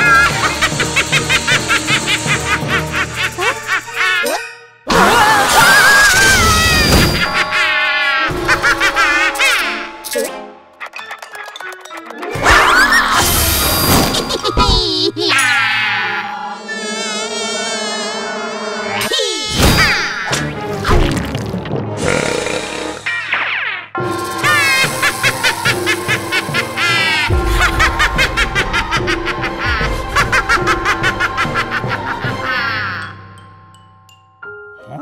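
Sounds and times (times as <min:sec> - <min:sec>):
cartoon fly buzzing: 0:00.0 - 0:04.1, 0:16.0 - 0:20.3, 0:22.0 - 0:27.4
high-pitched cartoon laughter: 0:00.0 - 0:09.9, 0:14.0 - 0:16.4, 0:23.1 - 0:33.2
background music: 0:00.0 - 0:35.0
loud wavering cry: 0:15.3 - 0:20.3.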